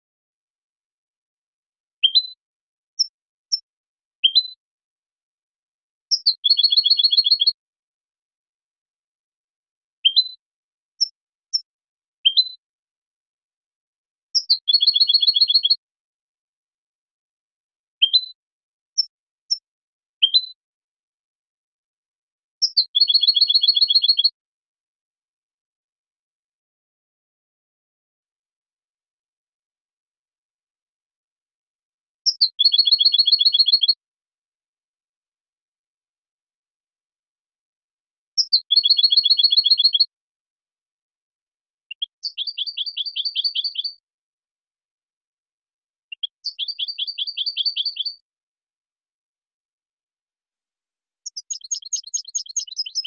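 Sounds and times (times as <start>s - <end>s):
goldfinch song with trill: 2.0s - 4.6s, 6.0s - 7.6s, 10.0s - 10.4s, 11.0s - 12.6s, 14.3s - 15.8s, 18.0s - 18.4s, 19.0s - 20.6s, 22.6s - 24.4s, 32.2s - 34.0s, 38.4s - 40.1s, 41.9s - 44.0s, 46.1s - 48.2s, 51.2s - 53.0s.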